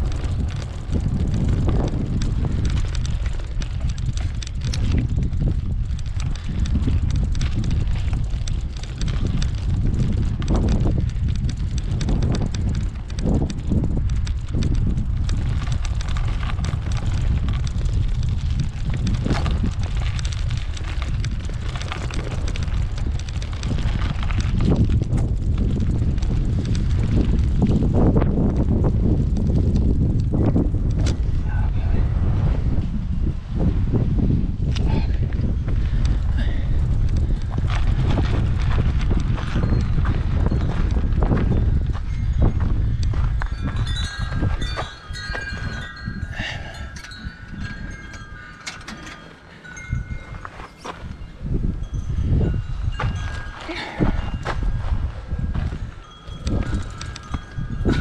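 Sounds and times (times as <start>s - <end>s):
light ticks and rattles: 0.0s - 31.9s, 34.7s - 58.0s
wind buffeting microphone: 0.0s - 58.0s.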